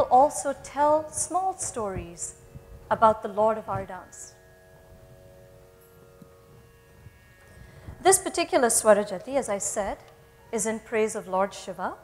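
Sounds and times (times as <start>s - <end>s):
faint hum of held tones: 0.0s - 12.0s.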